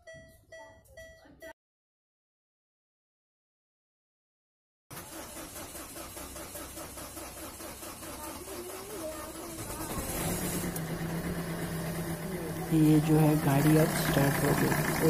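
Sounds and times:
diesel engine cranking: 0:04.9 - 0:15.0
diesel engine idling: 0:04.9 - 0:15.0.

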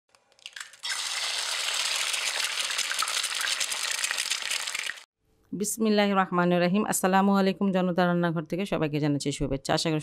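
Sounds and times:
hot oil sizzling and crackling: 0:00.3 - 0:05.1.

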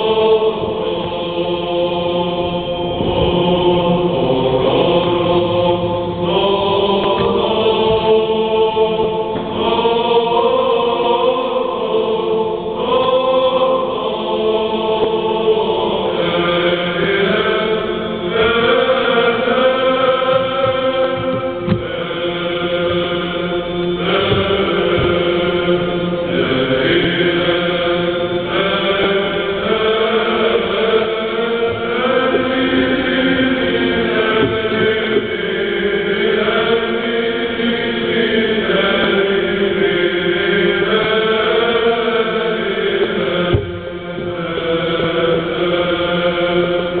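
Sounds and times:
choir singing a hymn unaccompanied: 0:00.0 - 0:47.0.

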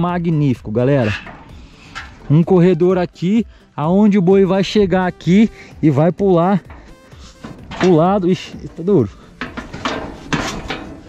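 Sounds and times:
heavy steel gate clanking and scraping: 0:00.0 - 0:11.0.

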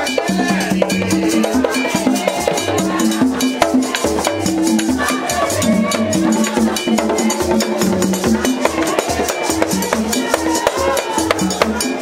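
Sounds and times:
deep drum beats: 0:00.0 - 0:12.0.

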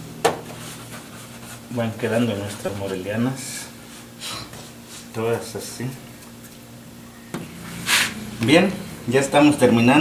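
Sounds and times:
dough rubbing on wooden table: 0:00.5 - 0:03.1.

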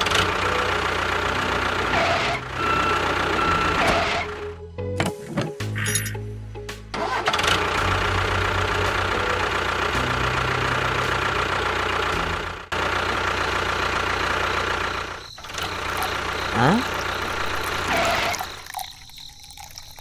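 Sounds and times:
music: 0:02.6 - 0:12.7
small motor running: 0:15.2 - 0:19.8.

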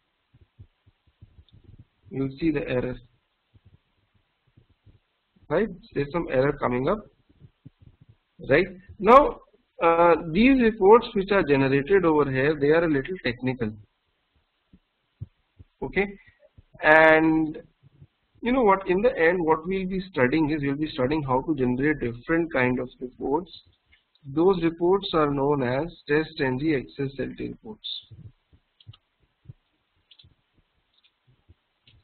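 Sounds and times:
faint low thuds: 0:00.0 - 0:09.5, 0:13.2 - 0:16.9, 0:17.5 - 0:18.4, 0:28.0 - 0:32.0
man speaking: 0:02.1 - 0:03.0, 0:05.5 - 0:07.0, 0:08.4 - 0:13.8, 0:15.8 - 0:17.6, 0:18.4 - 0:28.2
computer mouse clicking: 0:28.8 - 0:31.2.

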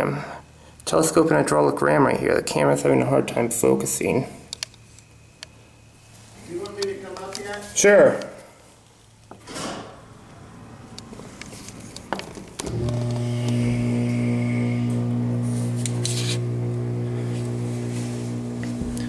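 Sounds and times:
elevator pump motor humming: 0:12.5 - 0:19.0
motor starting click: 0:12.6 - 0:17.6.

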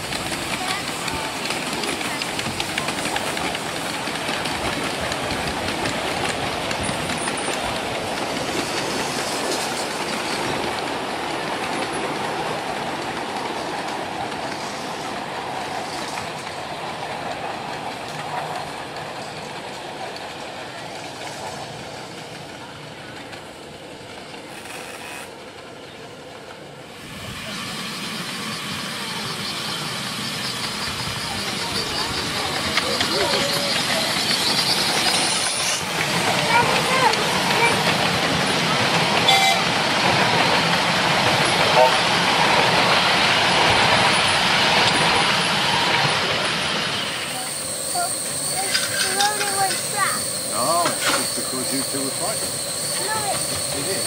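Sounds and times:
carriages rumbling: 0:00.0 - 0:24.5, 0:28.9 - 0:54.0
wheels clicking over rail joints: 0:00.0 - 0:25.9, 0:30.4 - 0:54.0.

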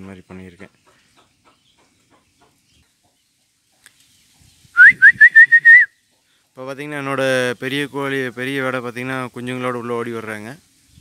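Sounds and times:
faint ticks: 0:03.8 - 0:04.1
person whistling a call: 0:04.8 - 0:06.0.

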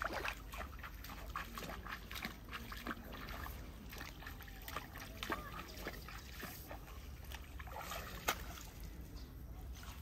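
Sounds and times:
muddy water dripping and splashing: 0:00.0 - 0:10.0.

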